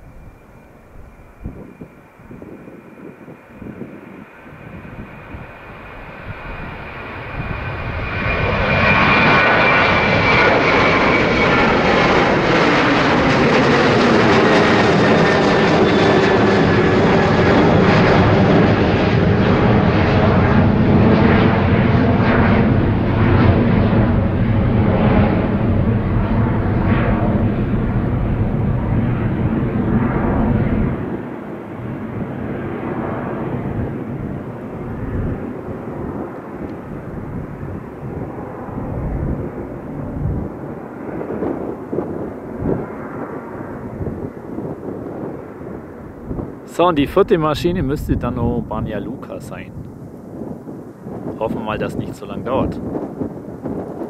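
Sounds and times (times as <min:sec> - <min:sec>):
jet engines climbing: 0:00.0 - 0:54.0.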